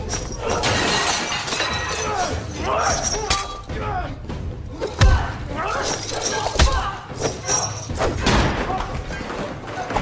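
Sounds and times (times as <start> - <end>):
debris scattering: 0.0 - 2.6
dishes and glass smashing: 0.0 - 3.6
people straining and grunting: 0.0 - 10.0.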